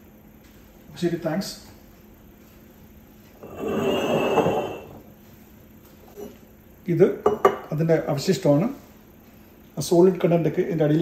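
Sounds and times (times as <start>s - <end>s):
glass jar knocking on countertop: 7.2s - 7.7s.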